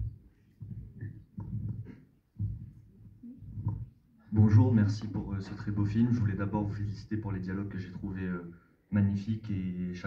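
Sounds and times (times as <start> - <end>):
faint low rumble: 0.0 - 8.1
man speaking into a microphone: 4.2 - 10.0.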